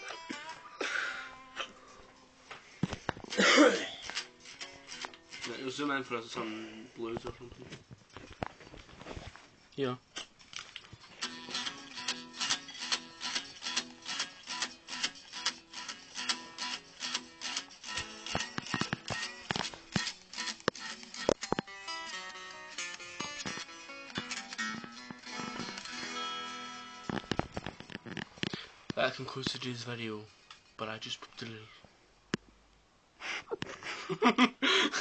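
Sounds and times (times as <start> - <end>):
guitar riff: 0.0 - 2.2, 3.1 - 6.5, 11.2 - 28.2.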